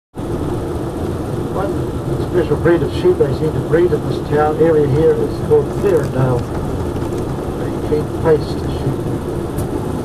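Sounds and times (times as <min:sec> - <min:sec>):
coach engine humming: 0:00.2 - 0:10.0.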